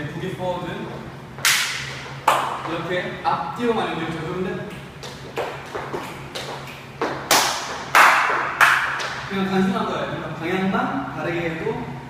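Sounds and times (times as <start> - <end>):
shoes tapping on wooden floor: 5.0 - 9.2.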